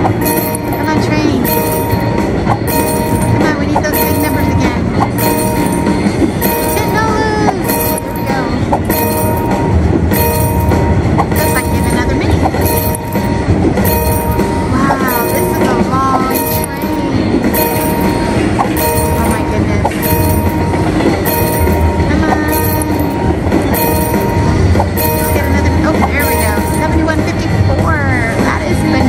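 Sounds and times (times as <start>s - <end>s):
chiming tones: 0.0s - 27.6s
train sound with regular beat: 0.0s - 29.0s.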